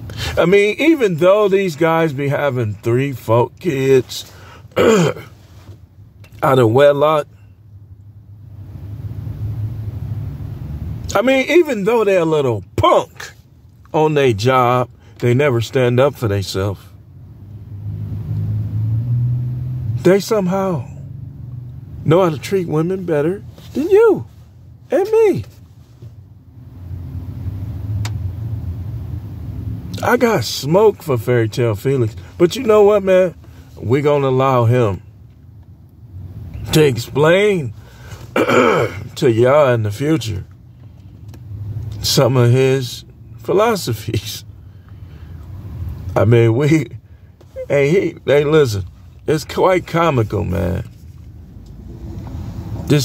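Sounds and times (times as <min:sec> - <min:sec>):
car engine running: 0:00.0 - 0:53.0.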